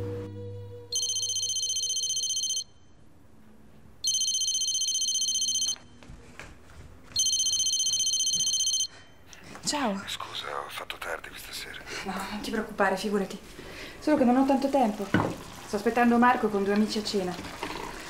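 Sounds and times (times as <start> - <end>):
electronic telephone ringing: 0.9 - 2.7, 4.0 - 5.8, 7.2 - 8.9.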